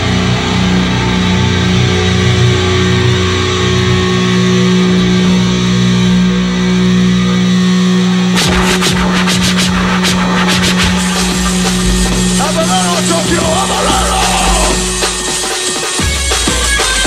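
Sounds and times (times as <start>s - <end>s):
droning guitar note: 0.0s - 16.6s
drums and cymbals hits: 8.4s - 17.0s.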